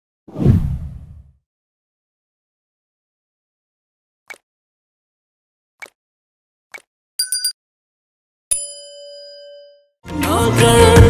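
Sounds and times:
whoosh with deep boom: 0:00.3 - 0:01.3.

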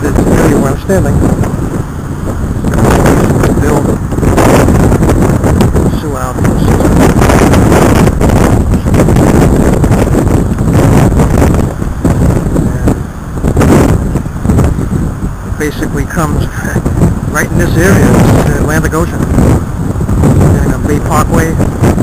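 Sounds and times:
road traffic: 0:00.0 - 0:22.0
wind buffeting microphone: 0:00.0 - 0:22.0.

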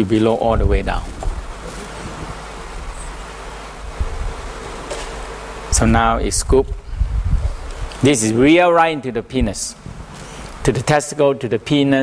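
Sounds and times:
background hiss: 0:00.0 - 0:12.0
steady low hum: 0:00.0 - 0:12.0.

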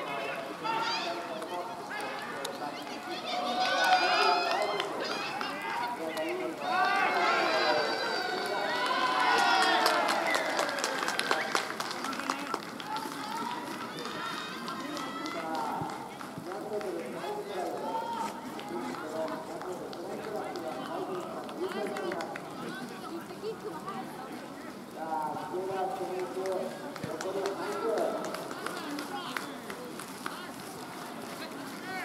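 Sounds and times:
players and spectators shouting: 0:00.0 - 0:11.2, 0:17.0 - 0:19.5.

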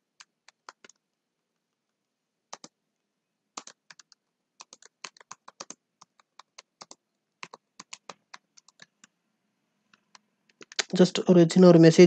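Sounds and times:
computer keyboard typing: 0:00.1 - 0:01.1, 0:02.5 - 0:02.8, 0:03.6 - 0:09.1, 0:09.9 - 0:11.0.

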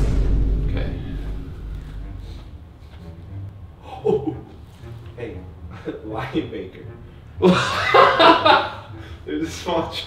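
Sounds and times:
low music sting: 0:00.0 - 0:02.7.

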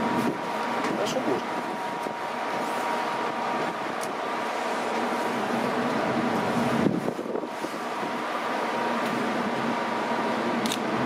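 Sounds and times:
low machinery hum: 0:00.0 - 0:11.0
wind rushing: 0:06.4 - 0:08.3.

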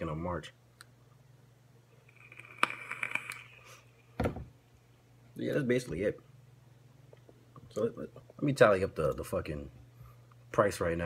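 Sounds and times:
electronic cigarette coil sizzling: 0:01.9 - 0:04.0.

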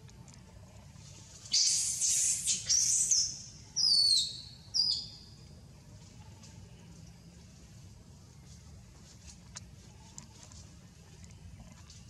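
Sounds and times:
sharp falling bird whistles: 0:01.5 - 0:05.0
bird calling: 0:01.5 - 0:05.1.

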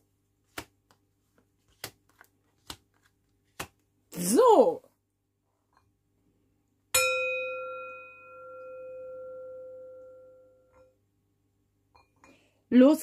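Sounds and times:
singing bowl ringing: 0:07.0 - 0:11.0.

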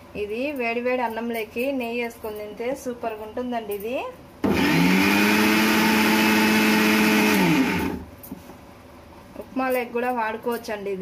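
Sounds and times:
mixer grinder motor running: 0:04.4 - 0:08.1.

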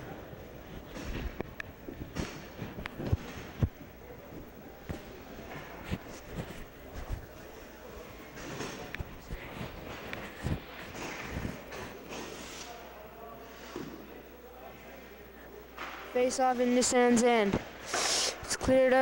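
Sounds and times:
faint distant voices: 0:00.0 - 0:16.2.

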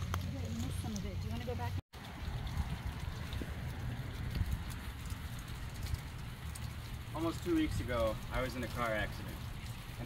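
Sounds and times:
rain on umbrellas and ground: 0:00.0 - 0:10.0.

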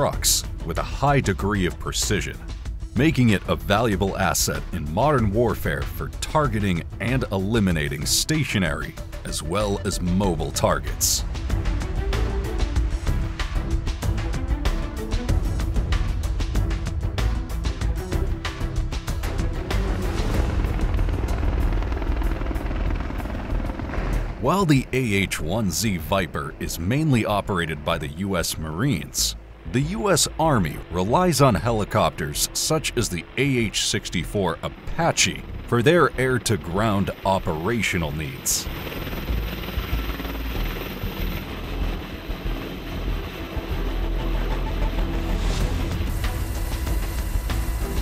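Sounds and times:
helicopter rotor chopping: 0:00.0 - 0:48.0
music: 0:00.0 - 0:48.0.

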